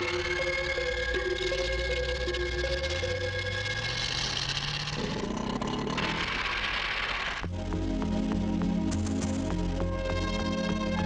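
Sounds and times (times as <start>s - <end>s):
vehicle engine pulling away: 0.0s - 7.5s.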